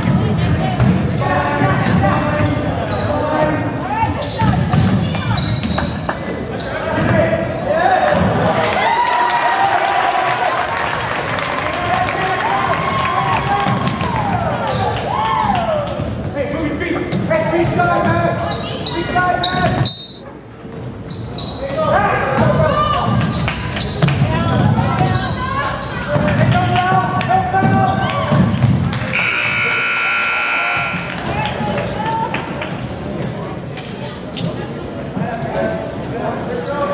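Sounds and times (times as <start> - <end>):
sneakers squeaking on gym floor: 0.0 - 7.6, 13.3 - 36.9
spectators' voices: 21.7 - 36.9
scoreboard horn: 29.1 - 31.4.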